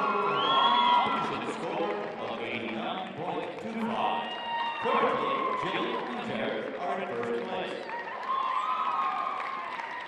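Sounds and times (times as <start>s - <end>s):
long high-pitched cheer: 0.0s - 1.6s, 7.9s - 10.0s
crowd applauding and cheering: 0.0s - 10.0s.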